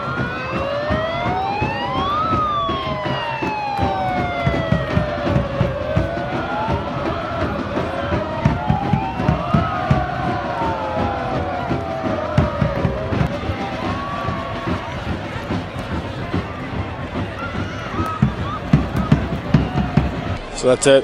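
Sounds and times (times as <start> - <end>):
siren winding up and down: 0.0 - 14.4
regular thumping beat: 0.0 - 20.5
crowd noise: 0.0 - 21.0.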